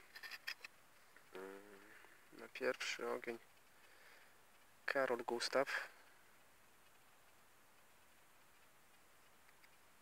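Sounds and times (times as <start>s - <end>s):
man's hesitation sound: 1.3s - 3.0s.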